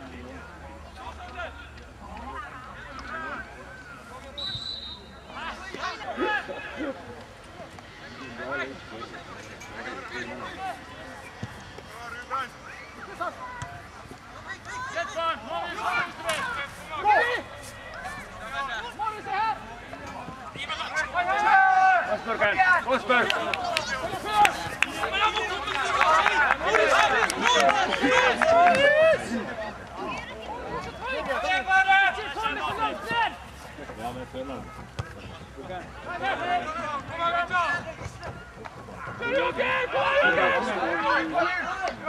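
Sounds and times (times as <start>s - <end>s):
men calling and shouting: 0.1s - 42.0s
men shouting calls: 39.1s - 41.8s.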